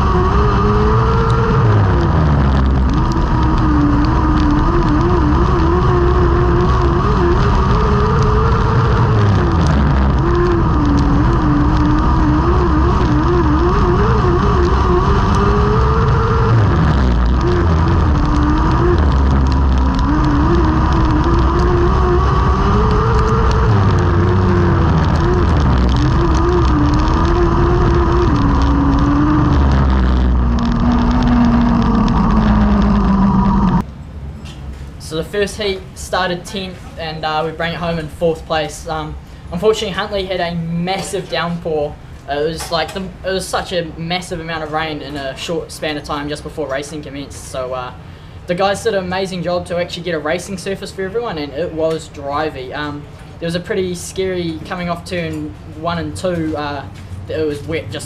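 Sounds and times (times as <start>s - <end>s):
race car engine at speed: 0.0s - 33.9s.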